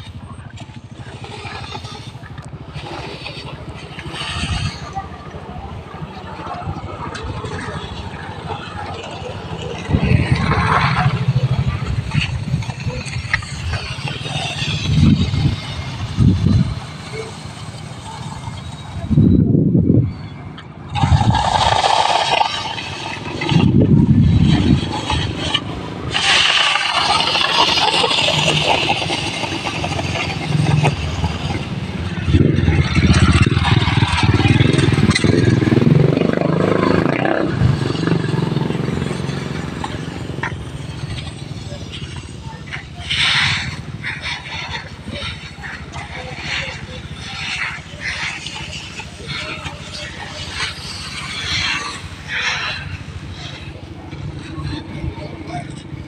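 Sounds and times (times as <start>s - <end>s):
rake dragged through rice grains: 21.0s - 53.5s.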